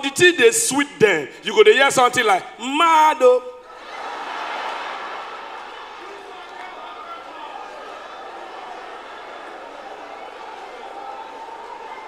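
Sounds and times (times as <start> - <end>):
audience laughing and applauding: 3.8 - 12.0.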